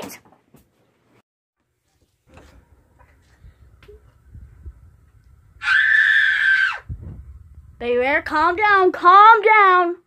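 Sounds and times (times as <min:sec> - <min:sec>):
faint low rumble: 0:02.3 - 0:05.6, 0:06.8 - 0:09.0
high-pitched scream: 0:05.6 - 0:06.9.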